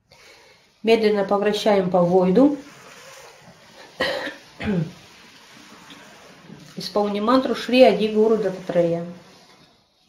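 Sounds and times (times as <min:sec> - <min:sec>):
woman clearing throat: 0:04.0 - 0:04.9
woman coughing: 0:04.0 - 0:04.9.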